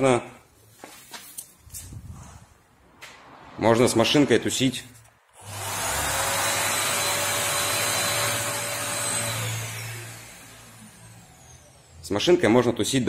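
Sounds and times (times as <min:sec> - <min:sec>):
vacuum drawing air through hose: 0:05.4 - 0:11.9
electric sander running: 0:05.4 - 0:12.1.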